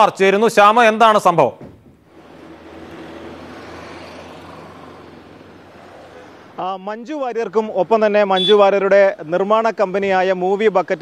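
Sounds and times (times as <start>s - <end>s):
engine rumble: 1.6s - 11.0s.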